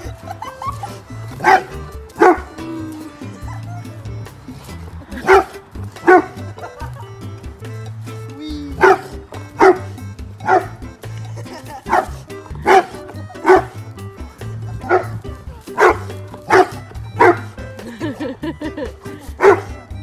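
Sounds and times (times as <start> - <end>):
dog barking: 1.4 - 2.5, 5.2 - 6.4, 8.8 - 10.8, 11.9 - 13.8, 14.8 - 15.2, 15.8 - 17.5, 19.4 - 19.8.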